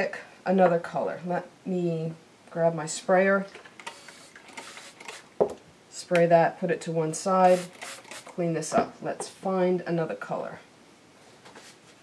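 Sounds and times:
spray bottle spraying: 3.9s - 5.3s, 7.4s - 8.3s.

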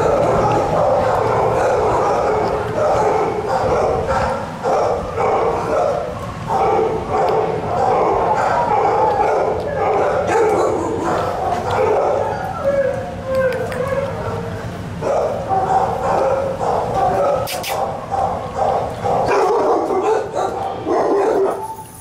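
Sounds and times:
dogs barking and yelping: 0.0s - 22.0s.

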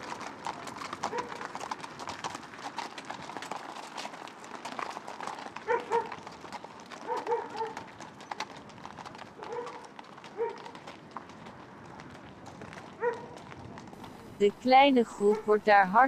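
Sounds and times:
horse hooves on gravel: 0.0s - 16.0s
dog barks: 1.1s - 1.4s, 5.6s - 6.1s, 7.0s - 7.8s, 9.4s - 10.7s, 13.0s - 13.4s.

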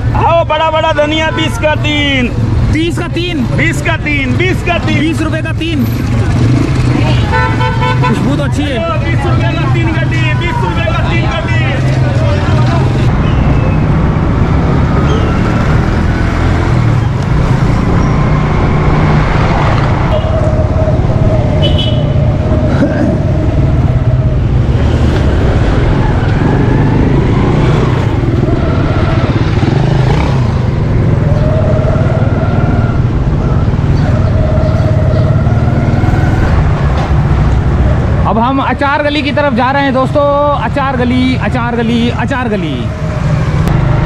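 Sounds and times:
street traffic: 0.0s - 44.0s.

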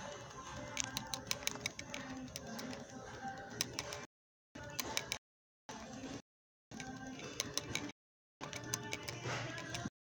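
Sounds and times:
store background noise: 0.0s - 10.0s.

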